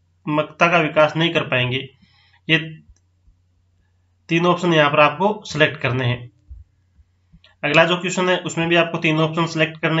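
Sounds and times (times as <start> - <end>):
person speaking: 0.3 - 3.0, 4.3 - 6.7, 7.4 - 10.0.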